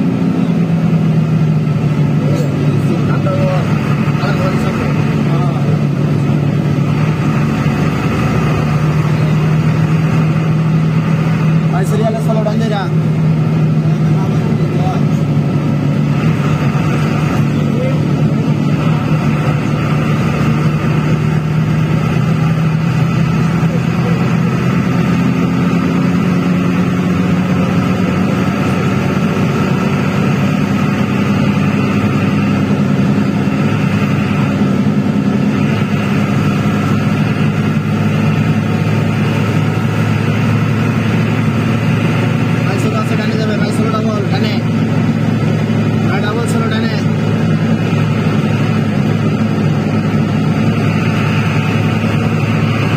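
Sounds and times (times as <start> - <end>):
vehicle engine drone: 0.0 - 52.9.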